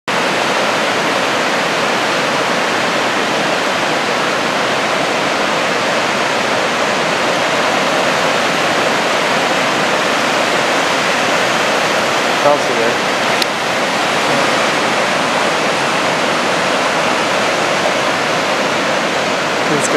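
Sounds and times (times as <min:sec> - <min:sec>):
ocean surf rushing: 0:00.1 - 0:19.9.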